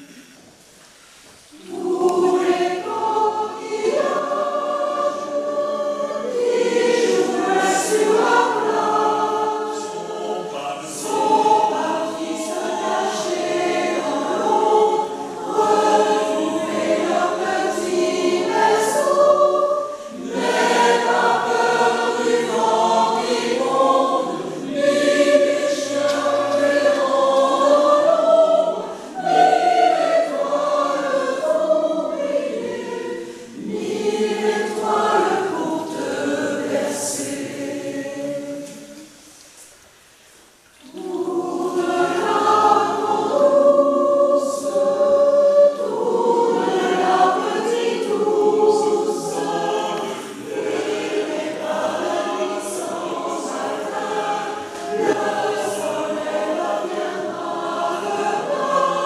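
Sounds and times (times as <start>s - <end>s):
mixed choir singing a lullaby: 1.5s - 39.4s, 40.0s - 59.0s.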